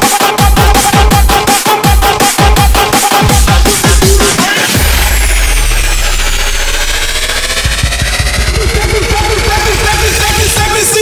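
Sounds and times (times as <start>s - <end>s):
electronic kick drum: 0.0s - 11.0s
deep bass note: 4.8s - 10.7s.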